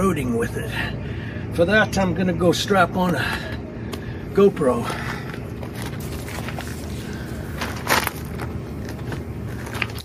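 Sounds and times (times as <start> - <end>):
steady outdoor rumble: 0.0 - 10.0
shoes crunching on gravel: 4.9 - 10.0.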